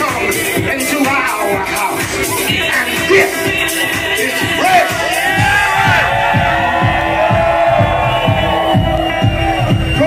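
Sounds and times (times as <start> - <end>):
loud house music: 0.0 - 10.0
club crowd cheering: 4.4 - 10.0.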